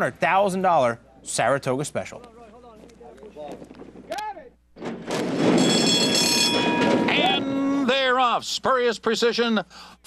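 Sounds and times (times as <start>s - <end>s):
horses breaking from gate: 4.8s - 7.5s
starting gate clanging open: 4.8s - 7.6s
start bell ringing: 5.6s - 8.0s.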